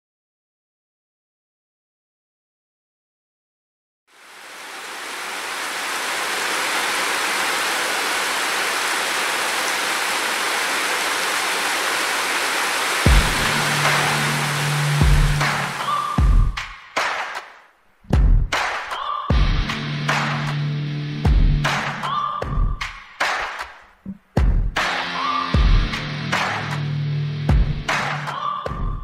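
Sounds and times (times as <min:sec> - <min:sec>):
heavy rain falling: 0:04.1 - 0:16.6
background music with deep thuds: 0:13.1 - 0:17.2, 0:18.1 - 0:20.5, 0:21.2 - 0:23.3, 0:24.1 - 0:24.9, 0:25.6 - 0:26.8, 0:27.5 - 0:29.0.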